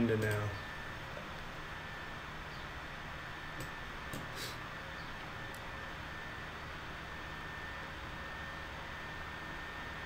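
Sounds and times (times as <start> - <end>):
faint high whine: 0.0 - 10.0
room tone hiss: 0.0 - 10.0.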